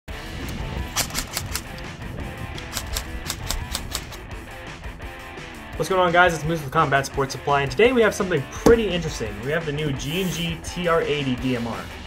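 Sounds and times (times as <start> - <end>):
background music: 0.1 - 12.0.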